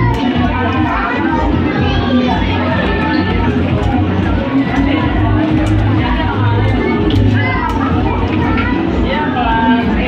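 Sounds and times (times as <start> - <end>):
background music with bass line: 0.0 - 10.0
people's voices: 0.0 - 10.0.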